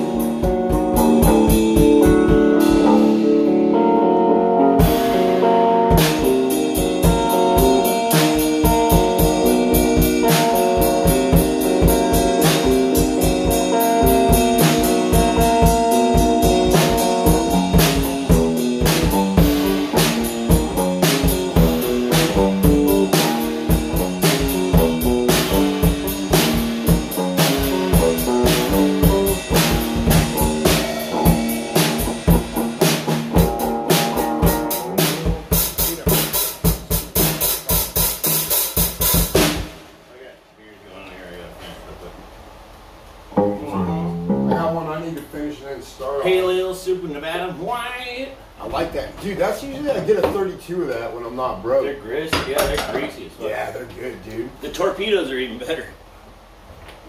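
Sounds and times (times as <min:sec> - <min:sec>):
driving drum hits: 0:00.0 - 0:03.3, 0:04.8 - 0:40.1
electric guitar riff: 0:00.0 - 0:37.4, 0:43.4 - 0:45.0.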